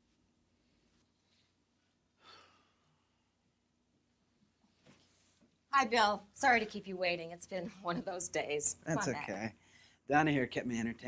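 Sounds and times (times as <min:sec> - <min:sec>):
faint exhaled breath: 0:02.2 - 0:03.1, 0:09.6 - 0:10.0.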